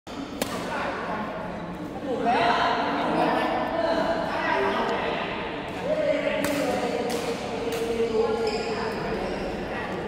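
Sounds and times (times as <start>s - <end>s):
voices in a hall: 0.1s - 10.0s.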